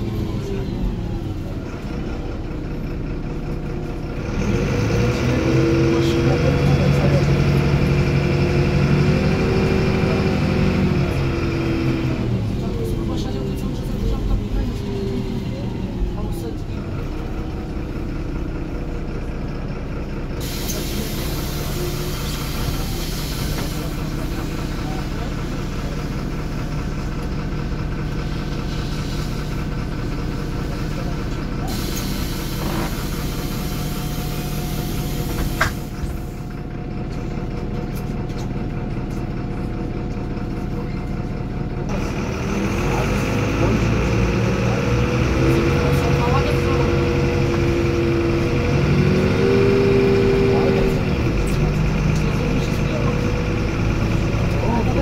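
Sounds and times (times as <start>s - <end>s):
bus diesel engine: 0.0s - 55.0s.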